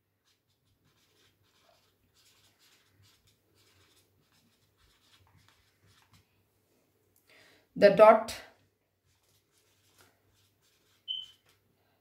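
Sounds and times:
marker writing on whiteboard: 0:00.2 - 0:06.2, 0:09.1 - 0:11.6.

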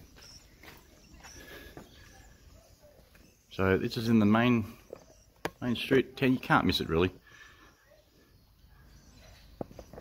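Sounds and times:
footsteps on gravel: 0:00.0 - 0:03.3
faint outdoor background: 0:00.0 - 0:10.0.

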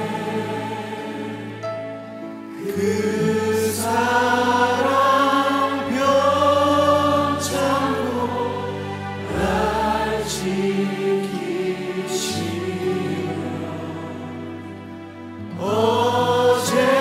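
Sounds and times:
group singing a slow hymn: 0:00.0 - 0:01.8, 0:02.5 - 0:14.7, 0:15.4 - 0:17.0
worship band playing: 0:00.0 - 0:17.0.

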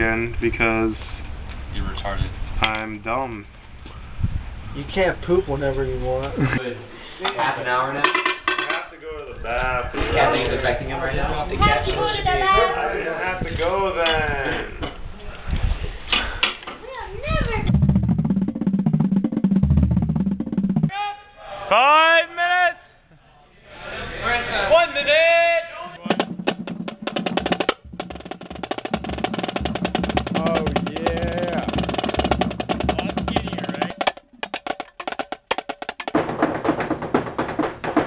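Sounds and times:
music with rapid drumming: 0:17.7 - 0:20.9, 0:26.0 - 0:38.0.

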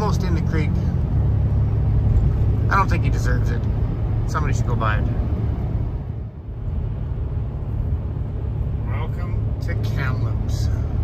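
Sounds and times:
engine and tyre rumble in car cabin: 0:00.0 - 0:11.0.

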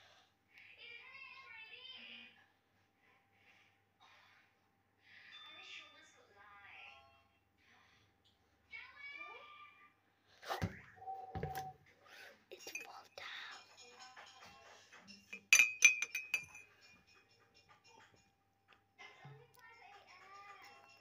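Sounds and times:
metal spoon clinking on glass: 0:12.6 - 0:18.4.

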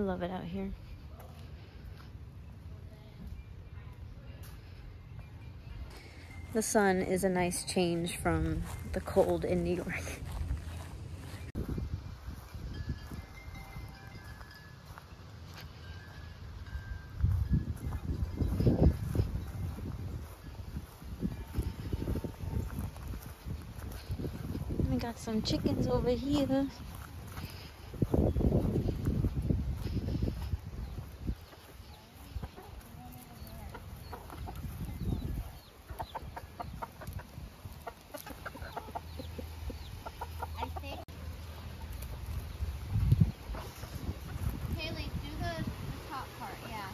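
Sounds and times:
high ringing tones: 0:05.2 - 0:09.3, 0:12.4 - 0:19.0
chickens clucking: 0:17.9 - 0:46.9.

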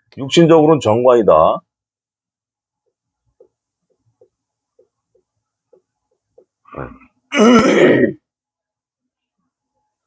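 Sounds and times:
man clearing throat: 0:06.7 - 0:08.2.

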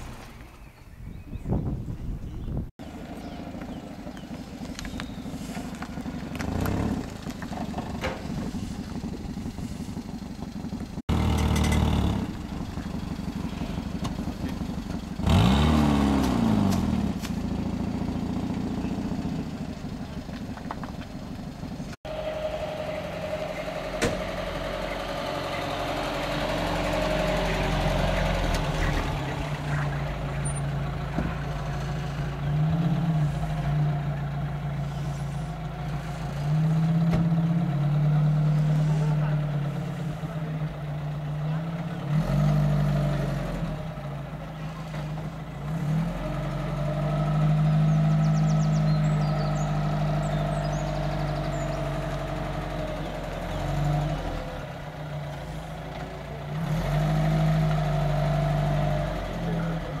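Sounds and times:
car engine revving: 0:02.8 - 1:00.0.

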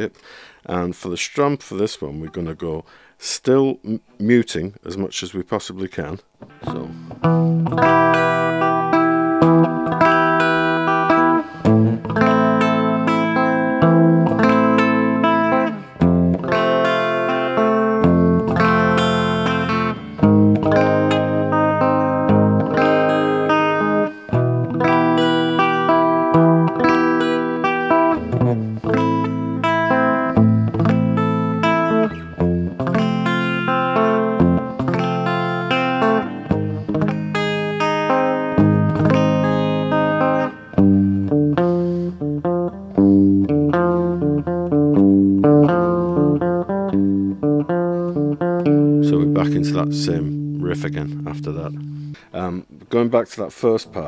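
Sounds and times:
electric guitar strumming palm-muted chords: 0:06.4 - 0:52.5.

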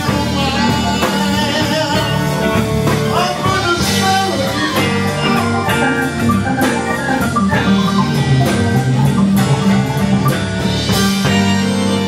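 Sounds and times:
live blues-rock band playing: 0:00.0 - 0:12.0.

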